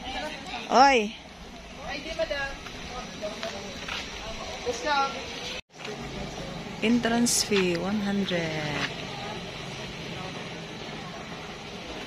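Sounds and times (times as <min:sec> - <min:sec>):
steady outdoor noise: 0:00.0 - 0:12.0.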